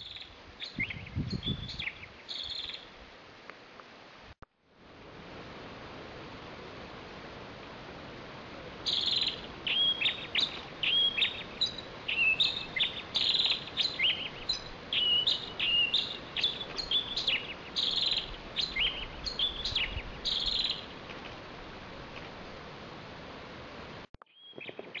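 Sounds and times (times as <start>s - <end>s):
bird of prey whistling calls: 8.9s - 20.9s.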